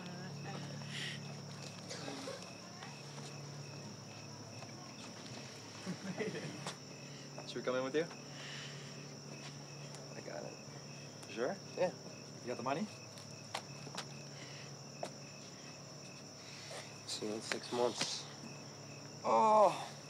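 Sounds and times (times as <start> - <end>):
crickets chirping: 0.0 - 20.0
man laughing: 5.8 - 6.7.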